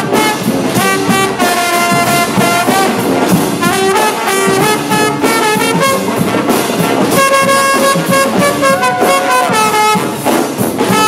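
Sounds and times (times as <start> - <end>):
brass band playing: 0.0 - 11.0
steady drum beat: 0.0 - 11.0.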